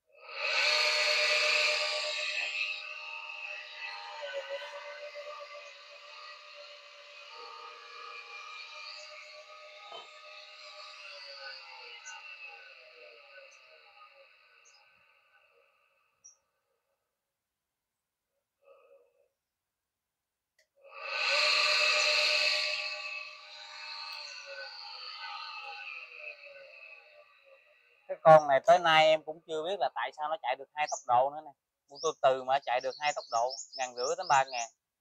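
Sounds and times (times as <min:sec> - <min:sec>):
bench polisher motor whine: 0:00.4 - 0:14.3, 0:21.0 - 0:27.3.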